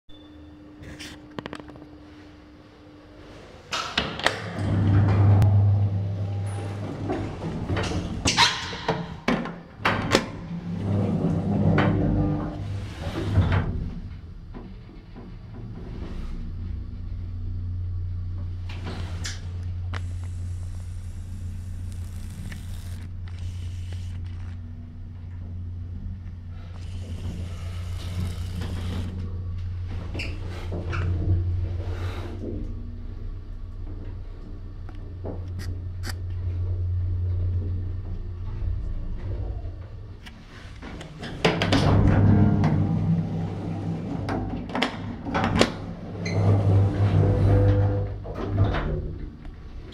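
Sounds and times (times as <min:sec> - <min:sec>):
elevator humming: 0:00.1 - 0:49.9
elevator doors sliding with clunks: 0:03.6 - 0:17.3, 0:35.1 - 0:49.9.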